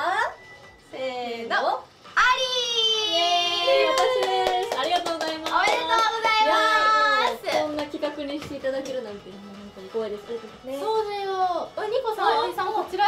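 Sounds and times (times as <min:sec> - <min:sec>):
hand claps: 0:03.8 - 0:09.0.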